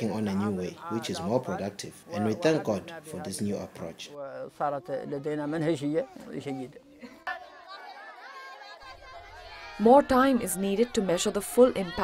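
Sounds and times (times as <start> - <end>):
children chattering: 4.2 - 12.0.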